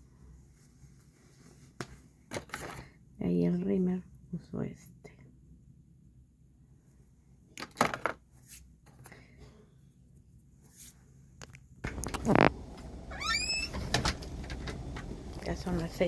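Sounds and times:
outdoor background noise: 0:00.0 - 0:16.0
high-pitched squeaks: 0:11.9 - 0:14.2.

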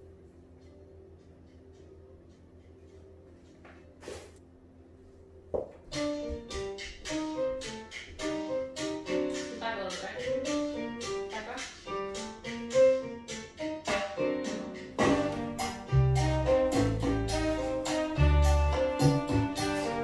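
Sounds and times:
heavy bass line: 0:15.0 - 0:20.0.

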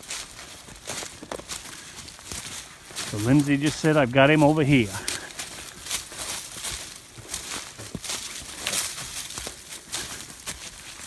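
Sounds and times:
footsteps through dry leaves: 0:00.0 - 0:11.0.

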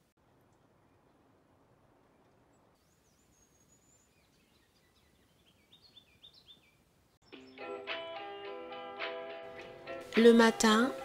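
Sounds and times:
songbird singing: 0:02.0 - 0:07.8.

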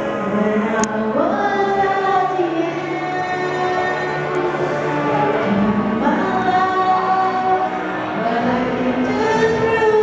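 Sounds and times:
backing track music: 0:00.0 - 0:10.0
woman singing karaoke: 0:00.0 - 0:10.0.

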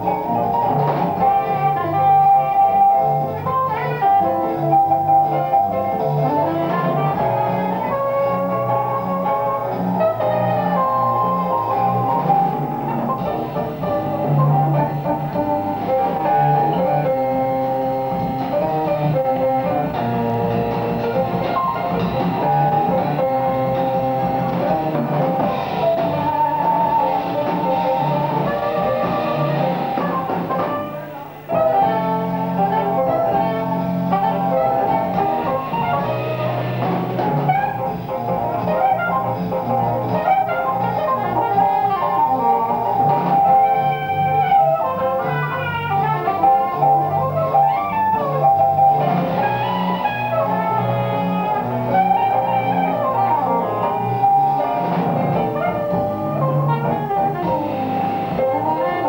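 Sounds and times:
drum kit: 0:00.0 - 0:59.0
piano: 0:00.0 - 0:59.0
saxophone: 0:00.0 - 0:59.0
upright bass: 0:00.0 - 0:59.0.

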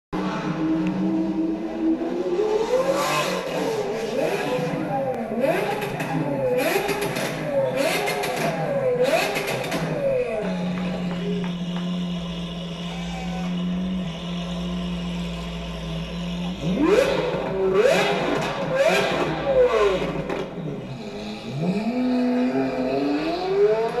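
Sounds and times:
sports car engine revving: 0:00.2 - 0:24.0
exhaust crackling: 0:03.4 - 0:24.0.

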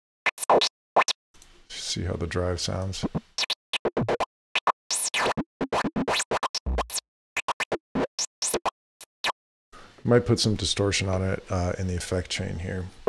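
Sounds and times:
synthesized noise lead bursts: 0:03.1 - 0:09.4.

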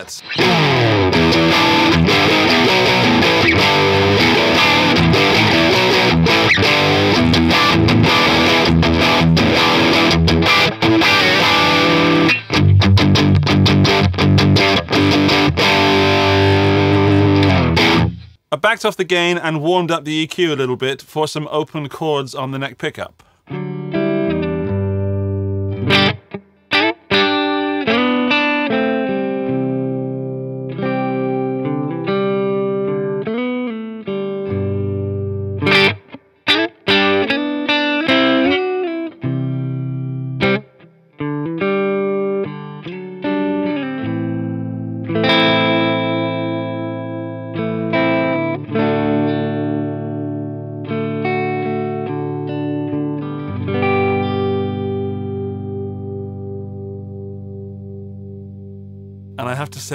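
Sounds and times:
electric guitar strumming chords: 0:00.0 - 0:18.4, 0:23.5 - 0:59.9.

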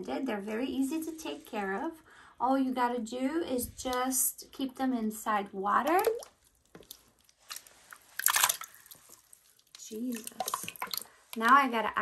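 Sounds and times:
wet squelching of leeches: 0:05.9 - 0:11.6.

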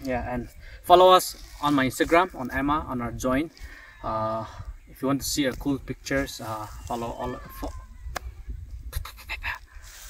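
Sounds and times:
man breathing: 0:03.6 - 0:04.8.

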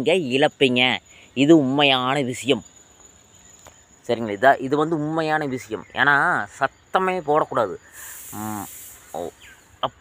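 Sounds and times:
man speaking: 0:00.0 - 0:02.7, 0:04.0 - 0:10.0
faint background noise: 0:00.0 - 0:10.0
high-pitched insect trill: 0:00.0 - 0:10.0.

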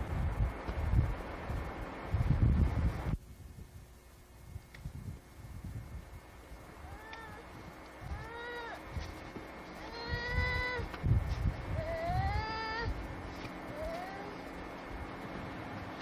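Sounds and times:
low rumbling wind: 0:00.0 - 0:16.0
small child whining cries: 0:06.8 - 0:08.8, 0:09.8 - 0:10.9, 0:11.7 - 0:13.0, 0:13.7 - 0:14.4
microphone handling noise: 0:08.0 - 0:14.0.

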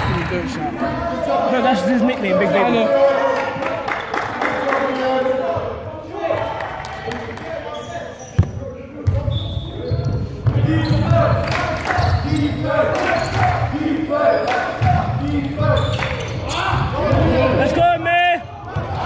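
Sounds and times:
basketball bouncing on wooden court: 0:08.4 - 0:09.3.

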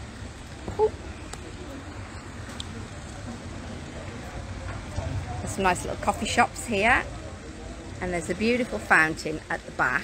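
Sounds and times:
outdoor hiss: 0:00.0 - 0:10.0.

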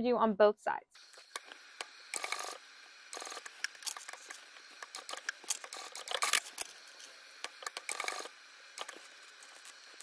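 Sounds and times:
sewing machine stitching: 0:01.0 - 0:06.8, 0:07.5 - 0:10.0.

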